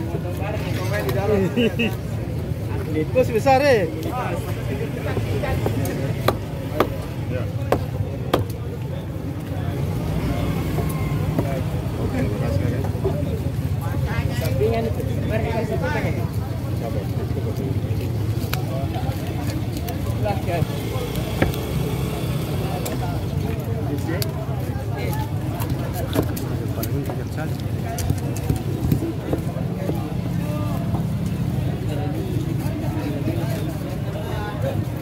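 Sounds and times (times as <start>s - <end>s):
market crowd chatter: 0.0s - 35.0s
knife chopping fish on wood: 5.6s - 7.0s.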